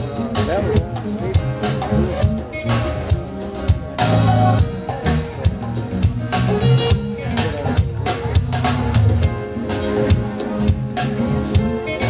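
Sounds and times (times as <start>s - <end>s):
drum kit: 0.0s - 12.0s
electric bass line: 0.0s - 12.0s
synthesizer keyboard: 0.0s - 12.0s.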